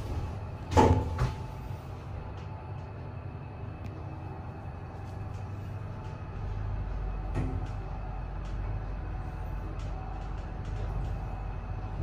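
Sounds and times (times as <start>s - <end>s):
lift machinery hum: 0.0s - 12.0s.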